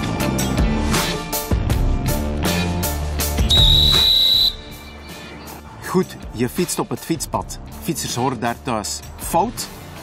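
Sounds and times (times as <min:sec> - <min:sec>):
background music: 0:00.0 - 0:10.0
shrill whistle blast: 0:03.4 - 0:04.8.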